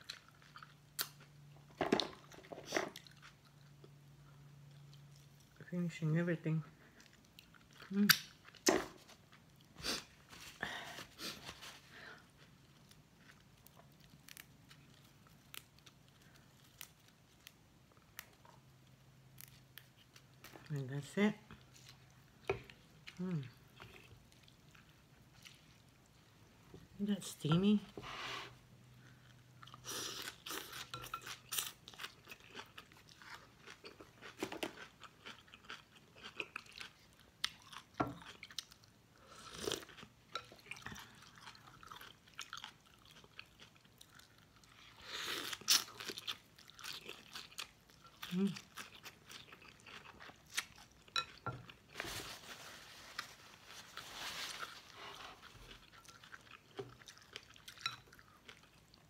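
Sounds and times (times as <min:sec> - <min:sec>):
wet chewing with crunches: 0:28.9 - 0:52.0, 0:54.6 - 0:59.0.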